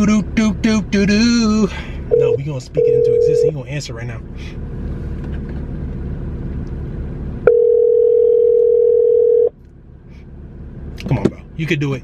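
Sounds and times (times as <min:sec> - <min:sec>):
telephone ringback tone: 0:02.1 - 0:03.5, 0:07.5 - 0:09.5.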